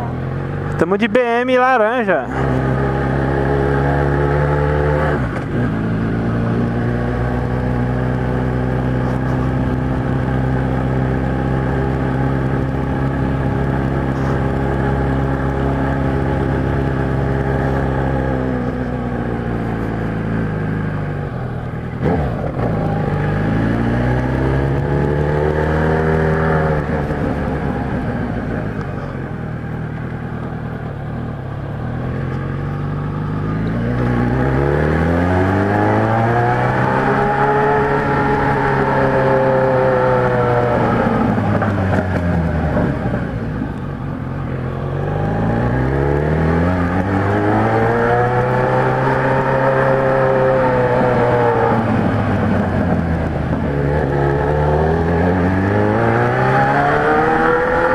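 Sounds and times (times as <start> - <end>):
motorcycle engine revving: 0.0 - 57.9.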